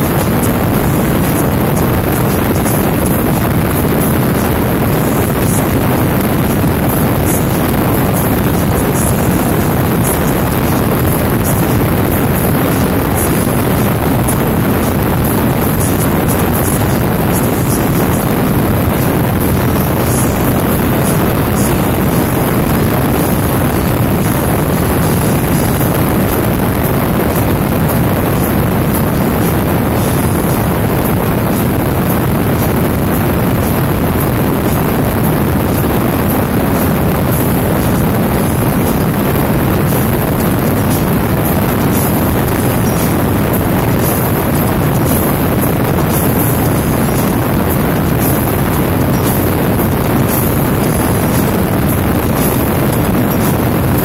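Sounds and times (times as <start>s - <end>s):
motorcycle and road noise: 0.0s - 54.0s
wind rushing over microphone: 0.0s - 54.0s.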